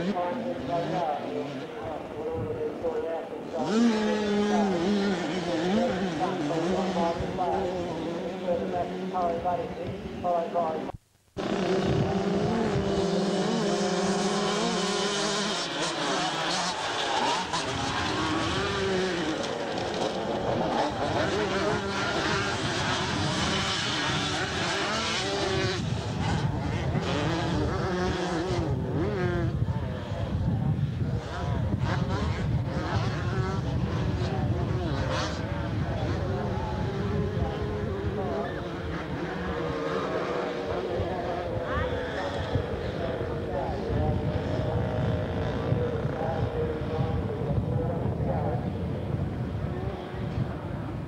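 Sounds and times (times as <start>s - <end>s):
motocross bikes revving: 3.4s - 51.0s.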